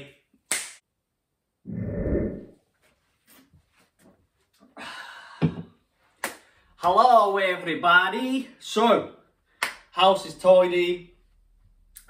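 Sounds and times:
low muffled whoosh: 1.7 - 2.6.

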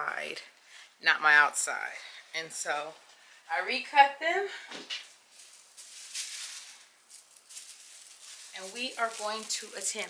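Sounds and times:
fabric rustling: 4.8 - 10.0.

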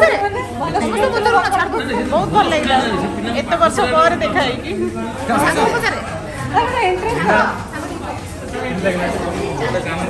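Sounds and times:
people talking: 0.0 - 4.3, 5.0 - 7.0.

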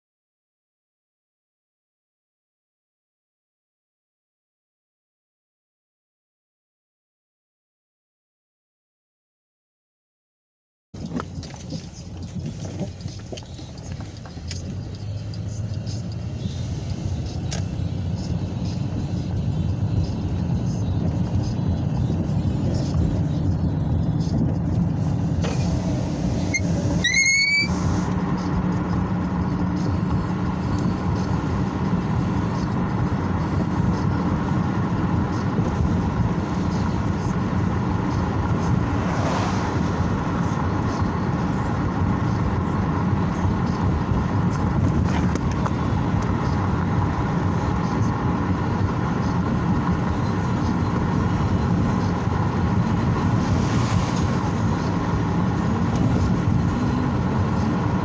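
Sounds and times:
car road and engine noise: 11.0 - 58.0
short rising squeak: 25.4 - 28.0.

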